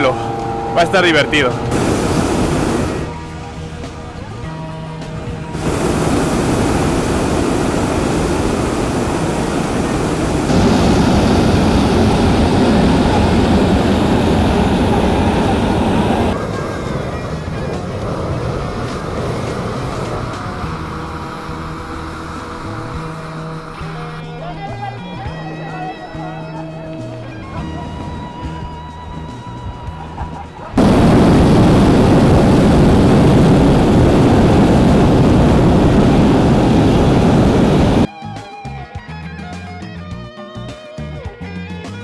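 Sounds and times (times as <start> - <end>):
background music: 0.0 - 9.0, 16.3 - 33.9, 37.7 - 42.0
propane burner firing: 0.7 - 3.3, 5.5 - 24.1, 30.8 - 38.1.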